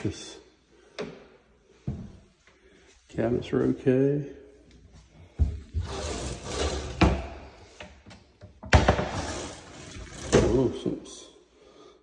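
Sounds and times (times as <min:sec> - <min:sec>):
cabinet doors opening and shutting: 0:05.4 - 0:10.8
drawer sliding: 0:05.8 - 0:07.4, 0:08.7 - 0:10.7.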